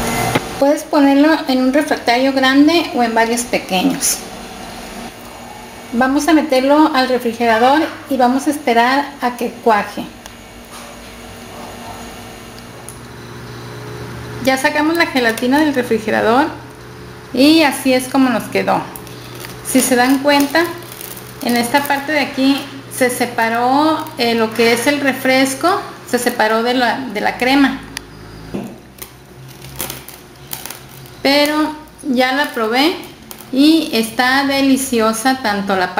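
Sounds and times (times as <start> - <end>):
room hum and hiss: 0.0 - 35.9.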